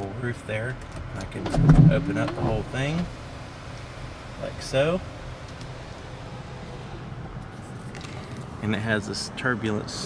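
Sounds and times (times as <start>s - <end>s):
sunroof motor humming: 1.2s - 7.4s
low rumble: 1.4s - 3.3s.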